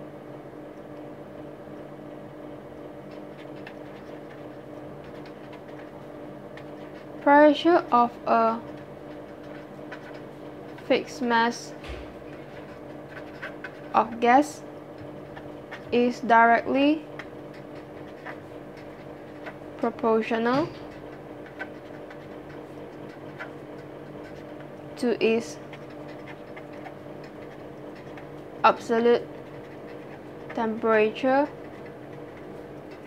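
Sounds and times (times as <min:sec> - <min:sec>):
background hum and hiss: 0:00.0 - 0:33.0
marker scratching on paper: 0:03.0 - 0:07.2, 0:08.4 - 0:33.0.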